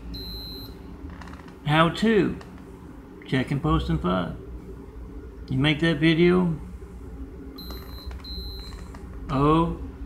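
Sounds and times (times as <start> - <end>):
glucose meter beeping: 0.1 - 0.8, 7.6 - 8.9.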